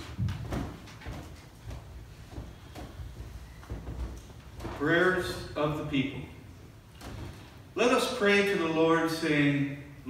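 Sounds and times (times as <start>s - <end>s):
thumps and shuffling on wooden floor: 0.0s - 5.0s.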